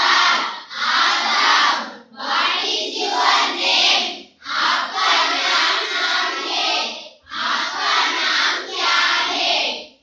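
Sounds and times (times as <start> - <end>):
girls chanting in unison: 0.0 - 10.0.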